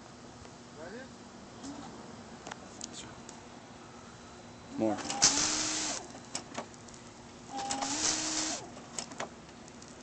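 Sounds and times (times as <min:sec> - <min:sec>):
pump whine: 0:03.6 - 0:09.6.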